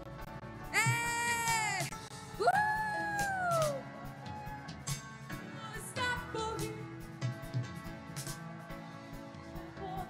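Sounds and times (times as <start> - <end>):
woman whooping into a microphone: 0.7 - 4.7
soft worship band music: 2.0 - 10.0.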